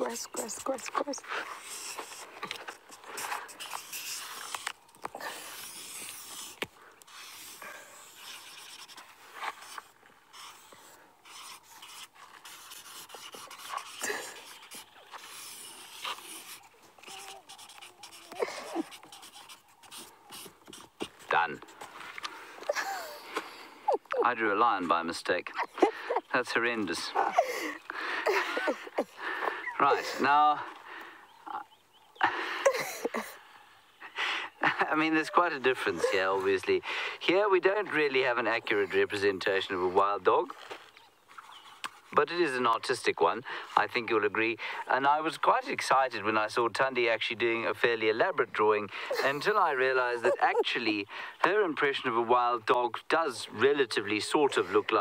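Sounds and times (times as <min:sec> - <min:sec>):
marker pens scratching on paper: 0:00.0 - 0:23.3
man laughing breathily: 0:18.3 - 0:19.1, 0:22.6 - 0:24.3, 0:25.6 - 0:26.4, 0:27.1 - 0:30.8, 0:32.2 - 0:37.2, 0:48.9 - 0:49.5, 0:50.1 - 0:50.7.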